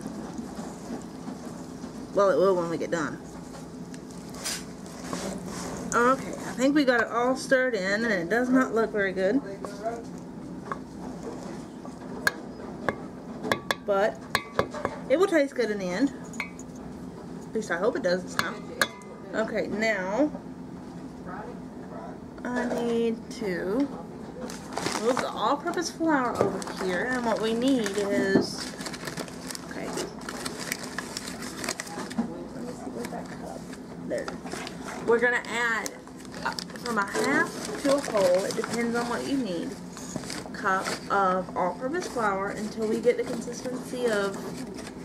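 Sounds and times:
steady low hum: 0.0 - 45.0
paper bag rustling and clicking: 24.5 - 25.8, 26.5 - 32.2, 35.4 - 41.1.

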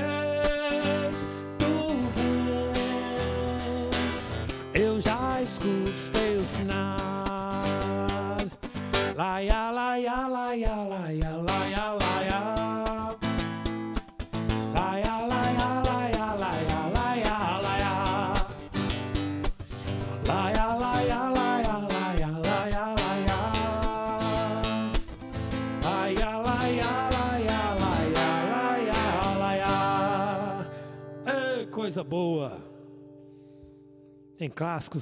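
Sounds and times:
man singing wordless melody: 0.0 - 13.4, 14.5 - 18.8, 19.9 - 32.8
strummed acoustic guitar: 0.0 - 34.3.

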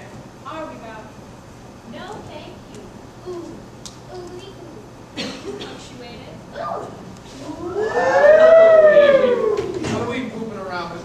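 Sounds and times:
siren-like wail: 7.6 - 9.7.

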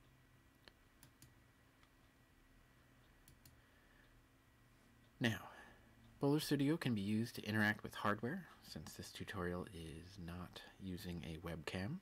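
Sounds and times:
computer mouse clicks: 0.6 - 2.0, 3.0 - 3.6.

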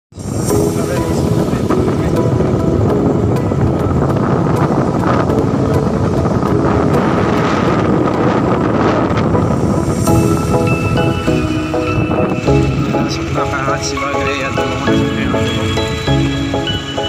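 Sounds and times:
wind rushing over microphone: 0.1 - 17.0
motorcycle running: 0.2 - 17.0.

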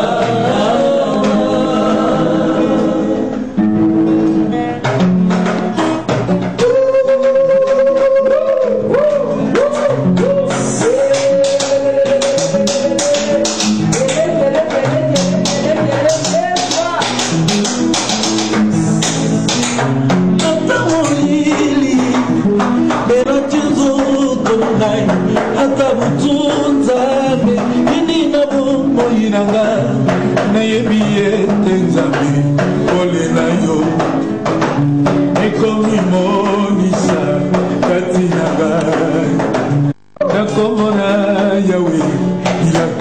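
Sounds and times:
man singing: 0.0 - 3.7, 6.5 - 43.0
acoustic guitar strumming: 0.0 - 43.0.

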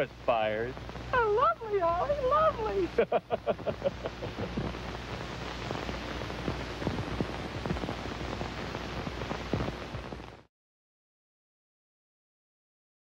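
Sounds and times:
soundtrack hiss and crackle: 0.0 - 10.5.

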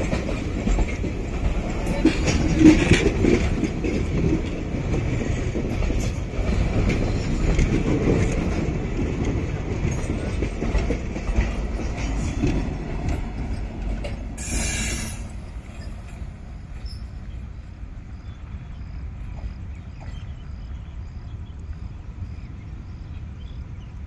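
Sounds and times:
wheels clattering over rail joints: 0.0 - 17.4
train coaches rumbling past: 0.0 - 24.0.

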